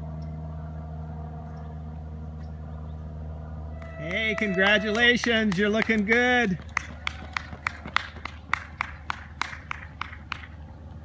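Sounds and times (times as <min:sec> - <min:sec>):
running footsteps on asphalt: 0:03.8 - 0:10.8.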